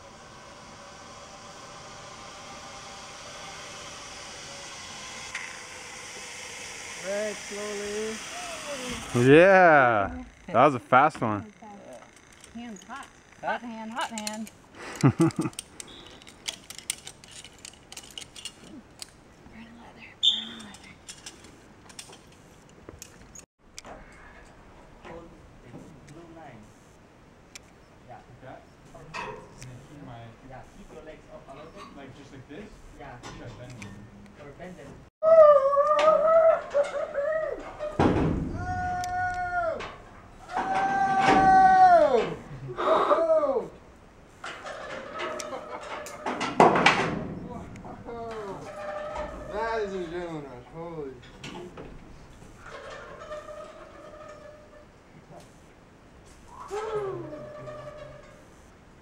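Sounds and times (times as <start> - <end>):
metal clips clicking and jangling: 13.9 - 19.2
person whooping yells: 35.2 - 37.6, 38.6 - 39.8, 40.5 - 43.8
thump: 38.0 - 39.0.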